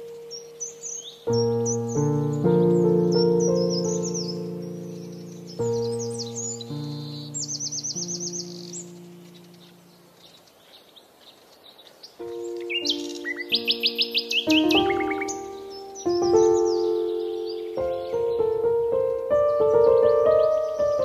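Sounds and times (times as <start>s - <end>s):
soft keyboard chords: 0.0s - 10.5s, 12.1s - 21.0s
birds chirping and trilling: 0.0s - 21.0s.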